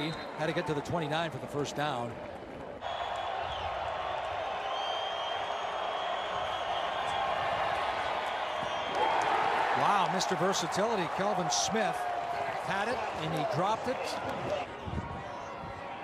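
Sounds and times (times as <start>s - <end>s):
stadium crowd roaring: 0.0s - 16.0s.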